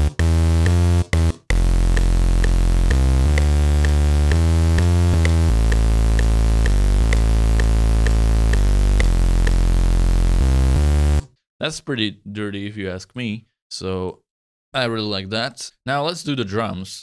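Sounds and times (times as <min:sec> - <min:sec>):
short clicks on the beat: 0:00.0 - 0:10.0
gritty synth bass melody: 0:00.0 - 0:11.3.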